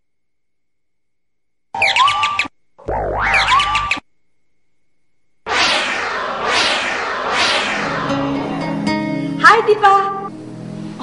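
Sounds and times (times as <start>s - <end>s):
electronic sliding tone stingers: 5.5s - 9.2s.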